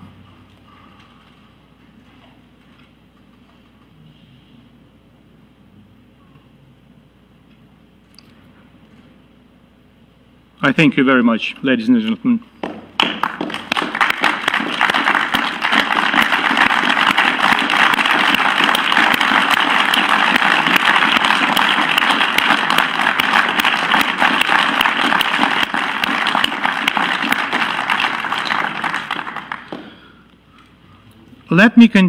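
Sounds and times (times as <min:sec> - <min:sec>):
people clapping: 0:12.6 - 0:30.3.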